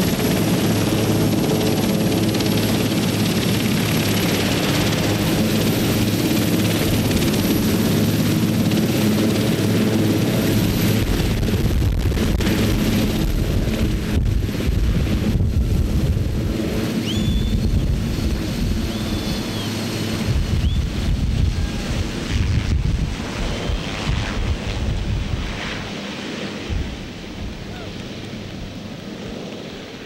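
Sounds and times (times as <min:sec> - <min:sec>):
rotor wash wind buffeting microphone: 0:00.0 - 0:29.7
helicopter rotor and turbine noise: 0:00.0 - 0:30.0.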